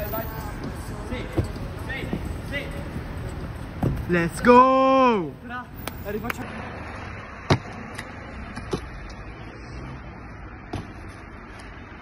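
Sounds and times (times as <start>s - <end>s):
outdoor background noise: 0.0s - 12.0s
shoes landing on pavement: 3.8s - 4.1s, 10.7s - 11.2s.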